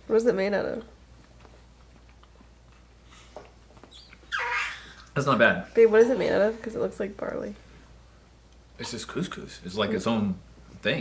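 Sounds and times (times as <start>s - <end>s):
man chewing: 1.2s - 4.2s.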